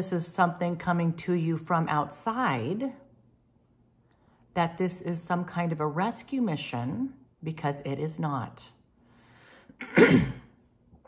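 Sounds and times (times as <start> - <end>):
faint breath in: 9.0 - 9.8.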